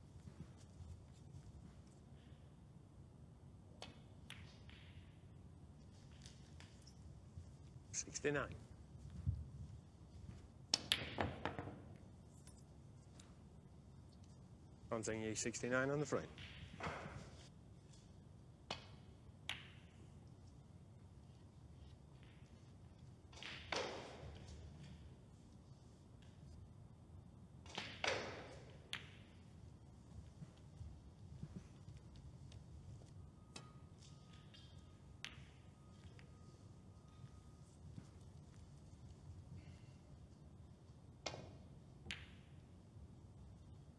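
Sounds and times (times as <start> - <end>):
snooker balls clicking: 3.7 - 7.0, 33.6 - 36.4.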